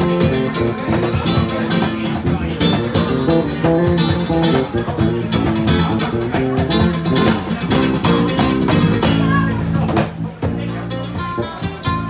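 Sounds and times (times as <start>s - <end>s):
acoustic guitars playing: 0.0s - 12.0s
hand strikes on cajon: 0.0s - 12.0s.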